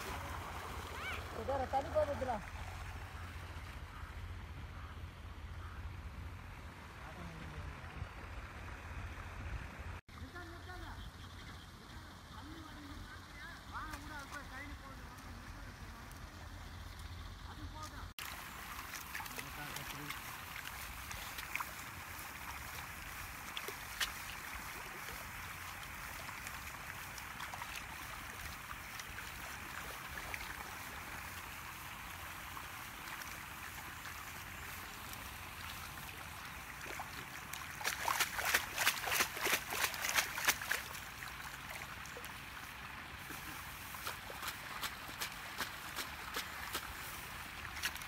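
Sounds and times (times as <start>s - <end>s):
hands splashing in muddy water: 18.2s - 31.4s, 32.8s - 42.5s, 43.2s - 48.0s.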